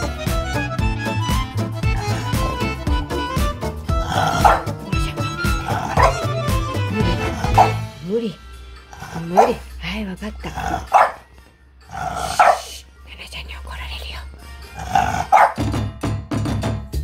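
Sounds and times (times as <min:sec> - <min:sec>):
dog whining: 0:03.9 - 0:07.8, 0:10.8 - 0:11.3, 0:14.8 - 0:15.6
dog barking: 0:04.1 - 0:04.8, 0:05.7 - 0:06.3, 0:07.4 - 0:07.8, 0:09.3 - 0:09.7, 0:10.8 - 0:11.3, 0:12.2 - 0:12.7, 0:14.8 - 0:15.6.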